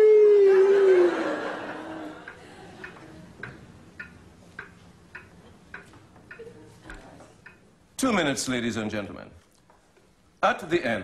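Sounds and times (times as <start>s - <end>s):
wall clock ticking: 2.2s - 8.4s.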